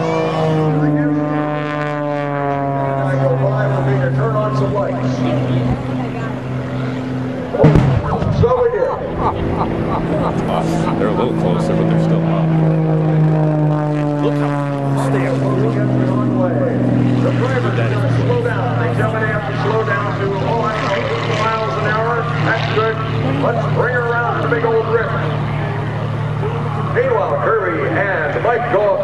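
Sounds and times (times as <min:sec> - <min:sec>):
passing aircraft engine note: 0:00.0 - 0:29.0
propeller plane engine drone: 0:00.0 - 0:29.0
voices talking: 0:02.5 - 0:29.0.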